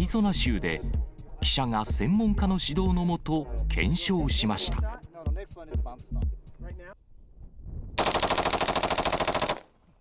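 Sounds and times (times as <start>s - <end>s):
rapid burst of rifle shots: 8.0s - 9.7s.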